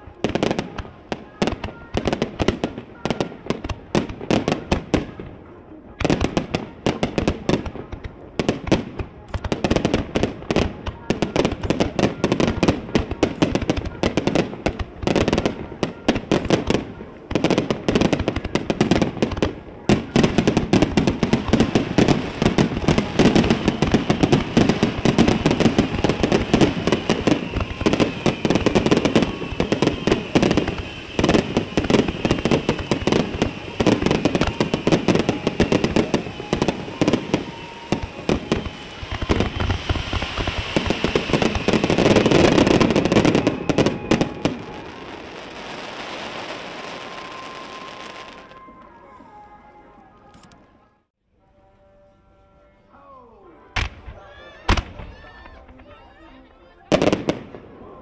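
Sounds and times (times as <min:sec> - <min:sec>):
fireworks bangs and crackles: 0:00.0 - 0:49.6, 0:53.8 - 0:58.0.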